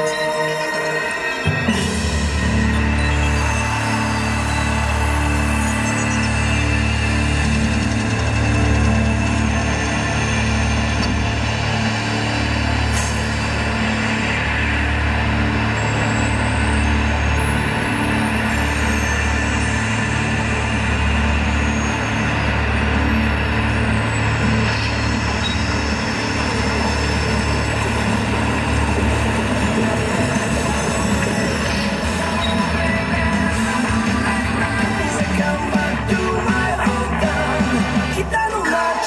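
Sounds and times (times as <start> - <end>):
music with pulsing bass: 0.0 - 39.0
train running sound effects: 0.0 - 39.0.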